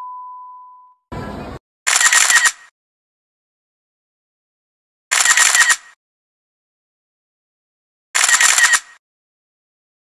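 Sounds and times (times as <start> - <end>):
camera shutter clicks: 1.9 - 2.7, 5.1 - 6.0, 8.2 - 9.0.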